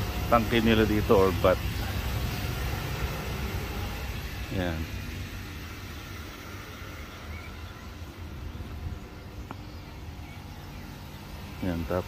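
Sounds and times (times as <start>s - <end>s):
milking machinery running: 0.0s - 12.0s.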